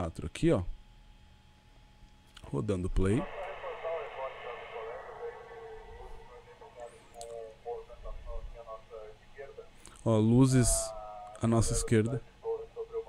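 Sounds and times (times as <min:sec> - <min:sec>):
voices over radio: 0:03.1 - 0:09.8, 0:10.4 - 0:13.0.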